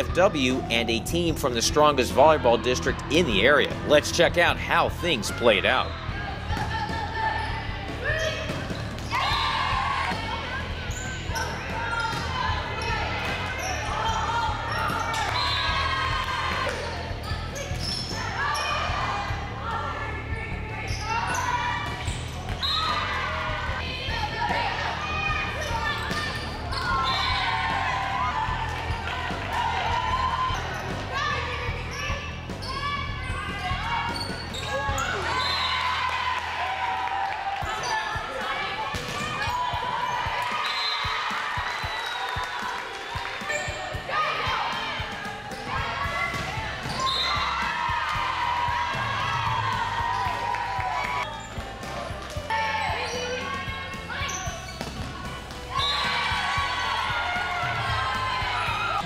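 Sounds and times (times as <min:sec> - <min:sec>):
people shouting and calling: 0:01.5 - 0:59.0.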